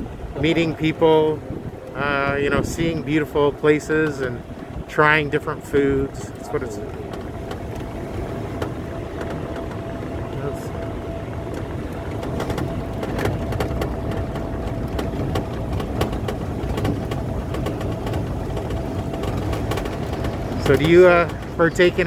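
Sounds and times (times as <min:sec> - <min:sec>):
golf cart rumbling: 0:00.0 - 0:22.0
thin steady whine: 0:00.0 - 0:22.0
small rattles and knocks: 0:02.6 - 0:22.0.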